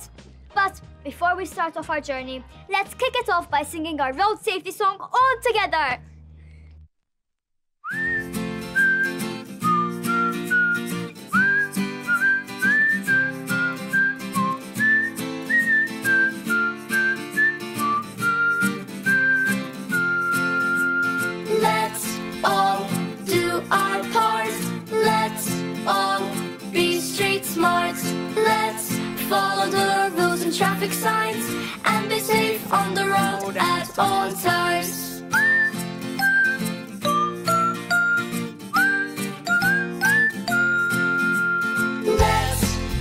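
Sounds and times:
whistled melody: 0:07.8 - 0:22.2, 0:34.6 - 0:42.7
guitar and steady beat: 0:07.9 - 0:43.0
voices singing: 0:21.4 - 0:35.2, 0:42.0 - 0:43.0.

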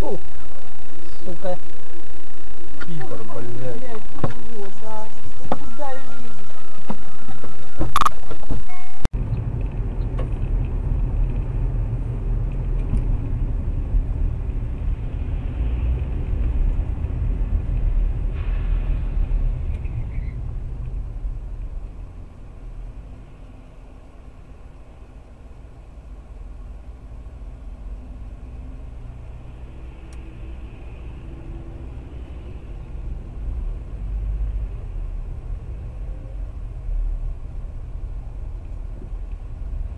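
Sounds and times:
loud noise burst: 0:00.0 - 0:09.1
car engine and tyre rumble: 0:00.0 - 0:39.9.

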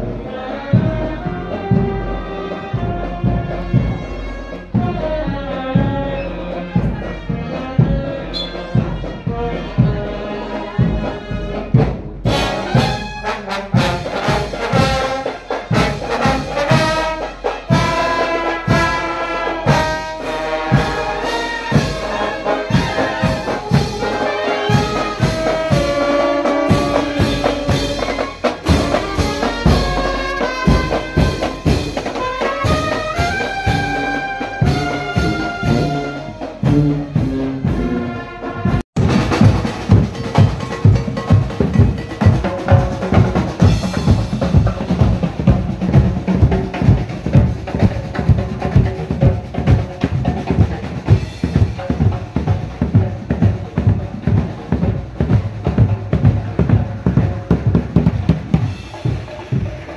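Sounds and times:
brass marching band playing: 0:00.0 - 0:59.9.

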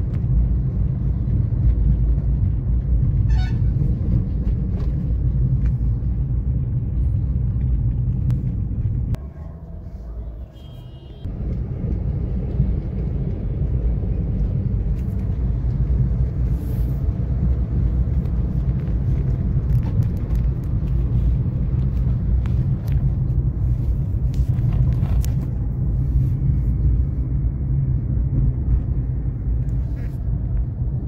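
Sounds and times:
car road and engine rumble: 0:00.0 - 0:31.0.

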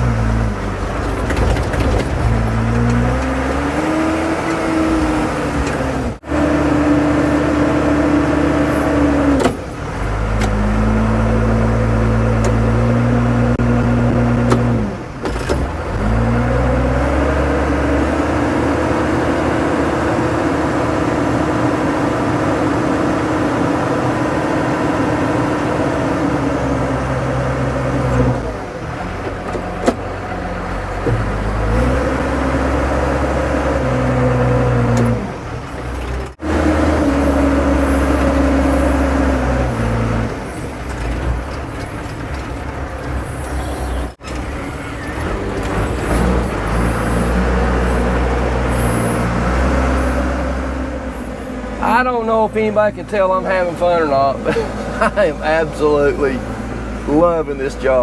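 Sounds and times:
dump truck diesel engine revving: 0:00.0 - 0:58.0.

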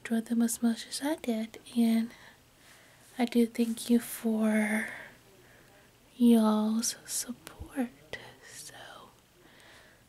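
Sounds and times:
woman whispering: 0:03.2 - 0:05.2, 0:06.2 - 0:09.2.

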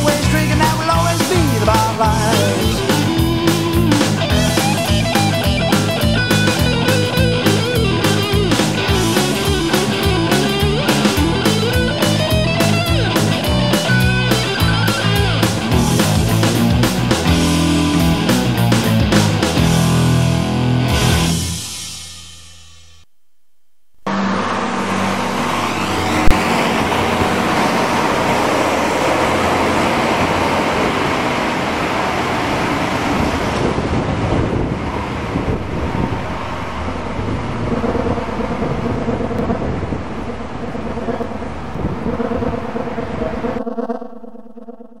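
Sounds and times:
boogie-rock song: 0:00.0 - 0:22.2
bus driving away: 0:00.0 - 0:22.4, 0:24.1 - 0:44.9.

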